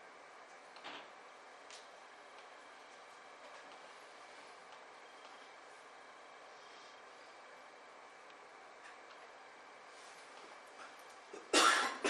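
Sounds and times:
person coughing: 0:11.4 - 0:12.0.

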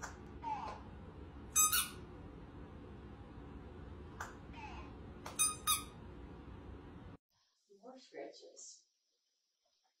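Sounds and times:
squeaky dog toy squeak: 0:01.6 - 0:02.0, 0:05.4 - 0:06.0.

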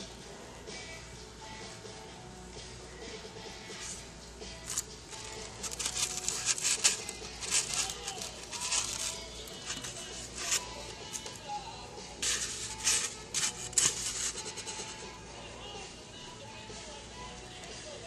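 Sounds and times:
styrofoam scratching and squeaking: 0:04.6 - 0:11.4, 0:12.2 - 0:15.1.

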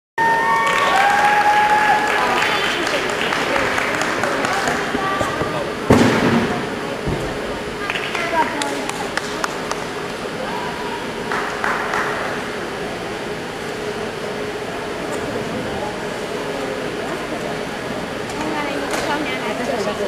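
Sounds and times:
springboard thump: 0:05.3 - 0:07.7
people calling: 0:06.6 - 0:20.0.

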